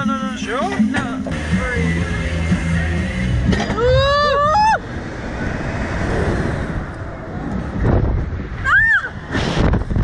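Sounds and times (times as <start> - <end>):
wind rushing over microphone: 3.9 - 10.0.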